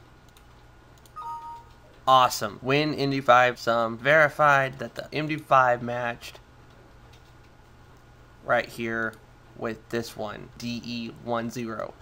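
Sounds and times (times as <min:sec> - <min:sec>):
low steady hum: 0:00.0 - 0:12.0
faint mouse clicks: 0:00.3 - 0:01.8
two-note system chime: 0:01.2 - 0:01.7.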